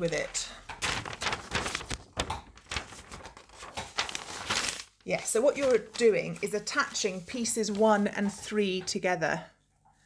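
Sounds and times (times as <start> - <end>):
paper rustling and crackling: 0.0 - 8.2.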